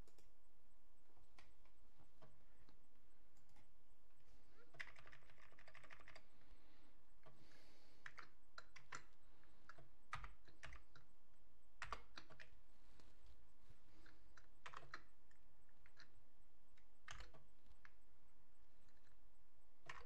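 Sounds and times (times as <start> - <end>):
typing on computer keyboard: 4.6 - 6.4, 8.0 - 11.1, 11.8 - 12.6, 14.0 - 18.0, 19.8 - 20.0.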